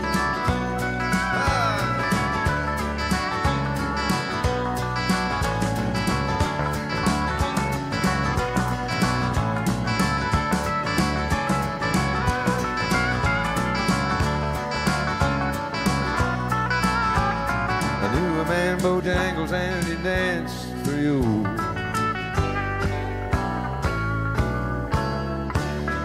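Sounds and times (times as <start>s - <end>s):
bass: 0.0s - 26.0s
electric guitar lead: 0.0s - 26.0s
steady drum beat: 0.0s - 26.0s.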